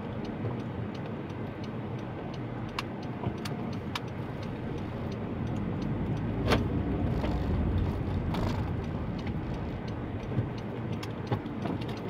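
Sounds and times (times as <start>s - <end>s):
regular ticking: 0.1s - 12.0s
car engine pulling away: 4.4s - 12.0s.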